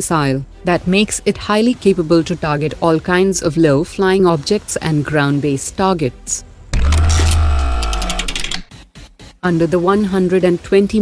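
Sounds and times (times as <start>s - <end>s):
rapid clicks: 6.8s - 8.7s.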